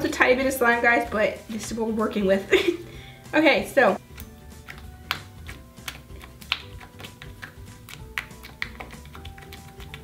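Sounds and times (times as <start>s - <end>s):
soft background music: 0.0s - 10.0s
slime clicking and popping: 4.0s - 10.0s.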